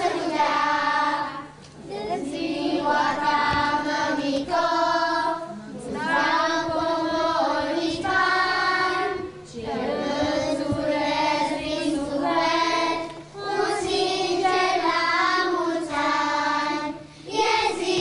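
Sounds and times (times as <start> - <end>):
young children singing: 0.0 - 18.0.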